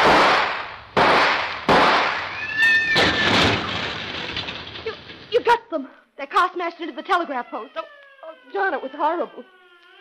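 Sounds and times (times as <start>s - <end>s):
crash: 0.1s - 5.4s
tyres screeching: 2.3s - 5.4s, 6.6s - 10.0s.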